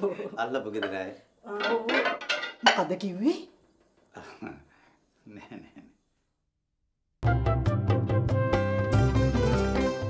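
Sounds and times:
plates clinking: 0.7s - 3.0s.

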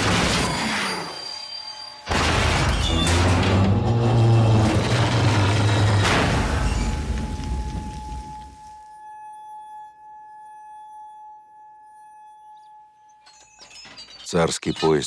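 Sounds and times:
train crash: 0.0s - 8.6s
high ringing tone: 6.6s - 14.3s.

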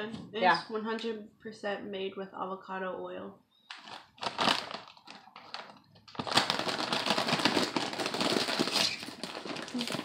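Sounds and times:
chip bag crinkling: 3.7s - 10.0s.

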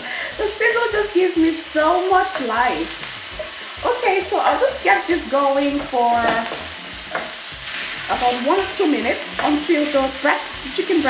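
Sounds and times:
chicken sizzling in hot oil: 0.0s - 11.0s.

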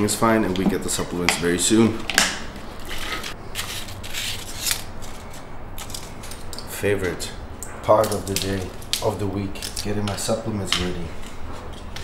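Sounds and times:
foil blister packs crinkling: 7.9s - 11.1s.

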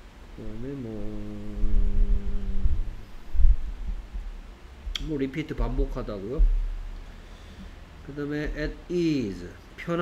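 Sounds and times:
dull thumps on microphone: 6.4s - 6.7s.

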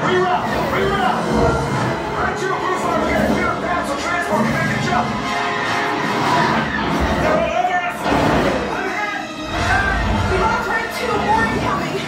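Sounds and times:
orchestral music: 1.5s - 12.0s
low rumbles: 9.4s - 10.9s.

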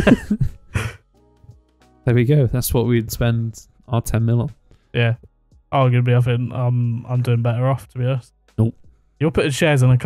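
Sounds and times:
laughter in rough bursts: 0.0s - 0.6s.

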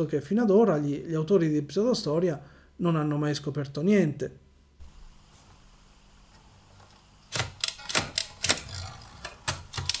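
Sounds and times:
typewriter keys clacking: 7.3s - 10.0s.

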